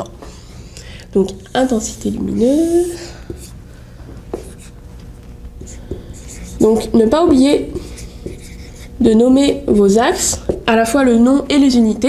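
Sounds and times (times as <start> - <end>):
marker rubbing on whiteboard: 2.4 - 3.6, 4.3 - 4.8, 5.6 - 10.6.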